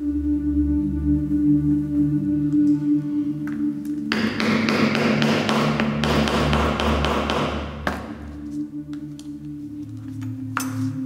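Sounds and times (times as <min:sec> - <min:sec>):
ambient music with sustained tones: 0:00.0 - 0:11.0
chisel tapped through leather: 0:04.1 - 0:08.1.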